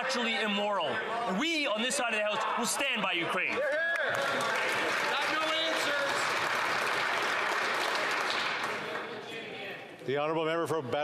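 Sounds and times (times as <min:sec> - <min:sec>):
crowd applauding: 0:03.5 - 0:09.2.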